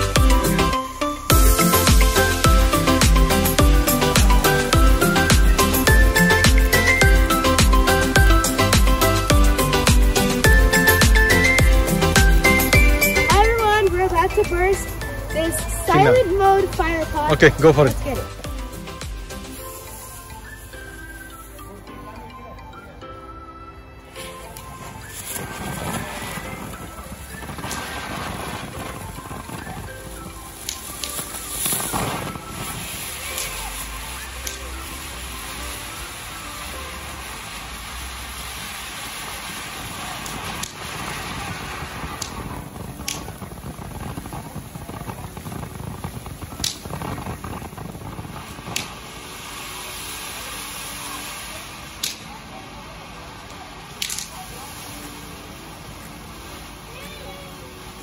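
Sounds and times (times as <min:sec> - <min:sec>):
firework hissing: 0:00.0 - 0:22.0, 0:24.0 - 0:58.0
background music: 0:00.0 - 0:43.6, 0:46.2 - 0:58.0
sharp crackling pops: 0:24.2 - 0:52.6, 0:53.4 - 0:55.4.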